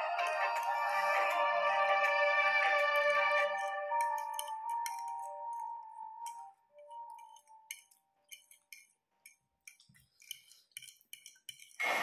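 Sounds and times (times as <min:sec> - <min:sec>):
background music: 0:00.0 - 0:08.9
cutlery clinking against plates: 0:03.6 - 0:12.0.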